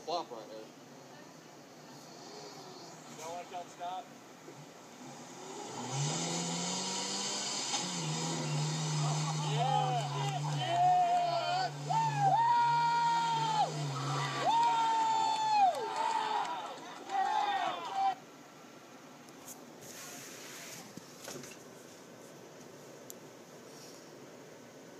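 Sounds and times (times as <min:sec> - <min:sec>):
truck engine droning under load: 0:04.1 - 0:17.9
drawn-out yells: 0:06.2 - 0:18.3
people shouting: 0:08.7 - 0:18.2.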